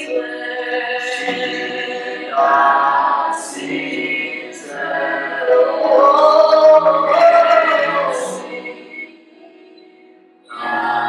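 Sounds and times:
group singing unaccompanied: 0.0 - 11.0.

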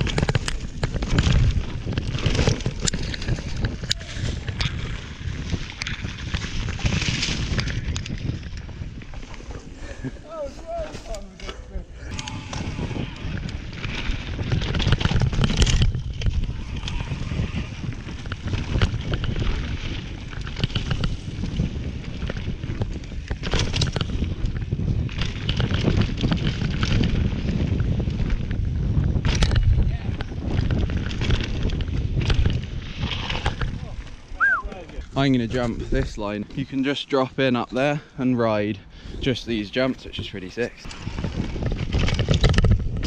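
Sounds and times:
bike rattling: 0.0 - 43.0
bike tyres rumbling over dirt: 0.0 - 43.0
wind buffeting microphone: 0.0 - 43.0.

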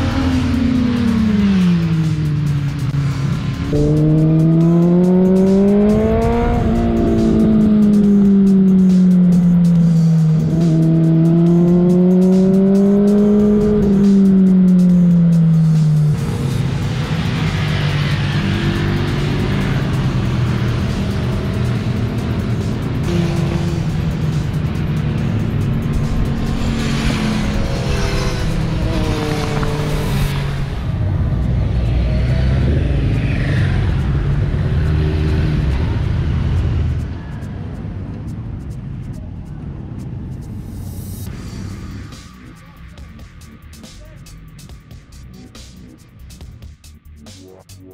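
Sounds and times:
motorcycle engine revving: 0.0 - 37.2
several motorcycles droning: 0.0 - 38.5.

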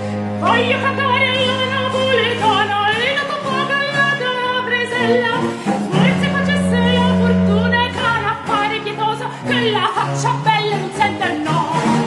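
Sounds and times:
cello: 0.0 - 12.0
plucked theorbo: 0.0 - 12.0
soprano singing with vibrato: 0.4 - 12.0
low held bass note: 5.9 - 8.9.

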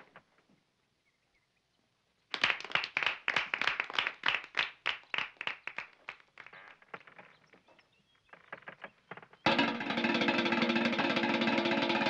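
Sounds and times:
people clapping: 2.3 - 7.2.

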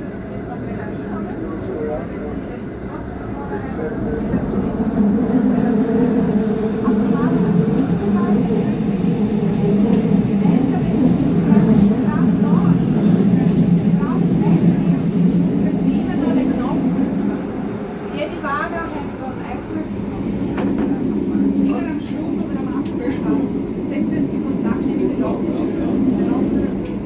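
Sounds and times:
electric train running on track: 0.0 - 27.0.

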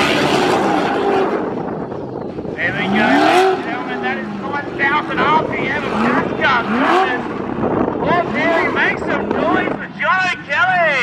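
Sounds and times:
supercharged car engine revving: 0.0 - 9.8.

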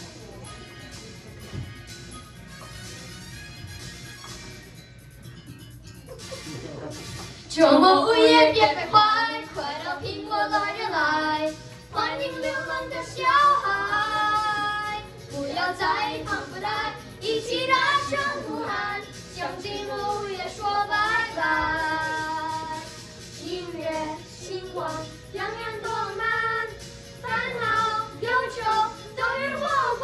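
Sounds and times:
pop backing track: 0.0 - 30.0
boys singing into microphones: 7.5 - 30.0.

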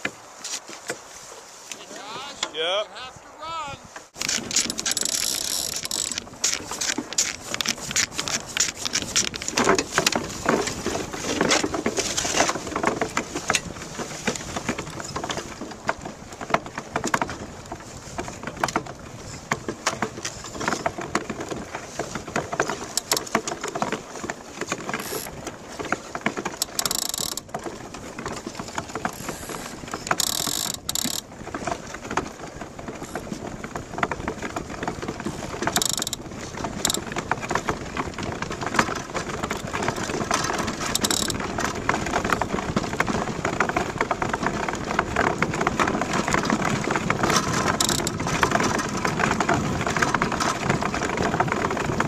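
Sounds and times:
iceboat runners rattling over ice: 0.0 - 52.0.

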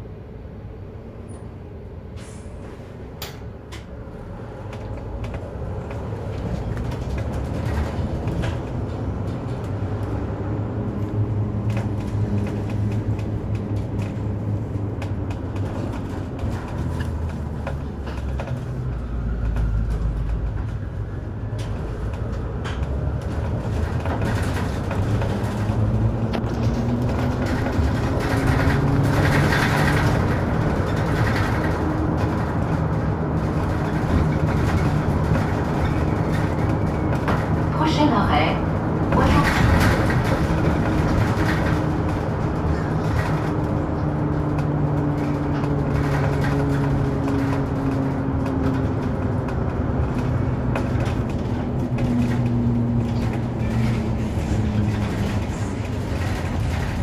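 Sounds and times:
bus engine: 0.0 - 57.0
road noise: 0.0 - 57.0.

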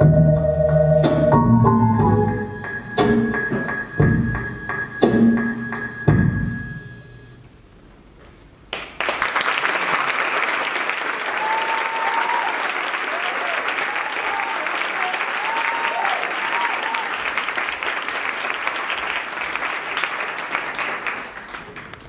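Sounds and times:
audience applauding: 8.7 - 22.0
high cheers: 11.0 - 17.8.

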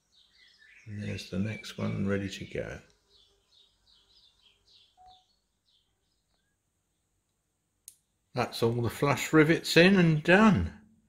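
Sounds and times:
faint bird chirps: 0.0 - 7.3.

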